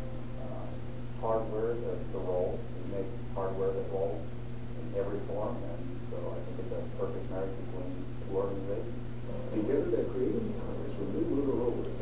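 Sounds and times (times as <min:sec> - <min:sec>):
steady low hum: 0:00.0 - 0:12.0
muffled narration through speakers: 0:00.4 - 0:12.0.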